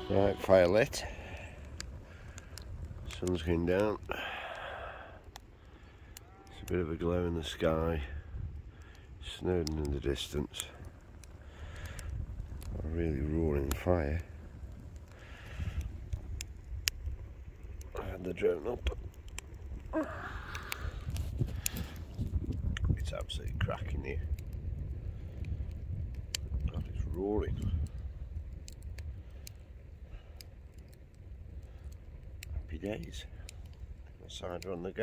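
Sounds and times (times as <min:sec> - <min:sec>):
fire crackles: 0:00.0 - 0:35.0
fire rumbling: 0:00.0 - 0:35.0.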